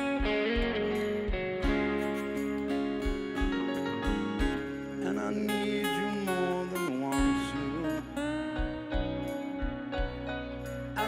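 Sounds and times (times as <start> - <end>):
drum hits: 0.0 - 4.8, 7.2 - 10.7
bass guitar: 0.0 - 11.0
electric guitar lead: 0.0 - 11.0.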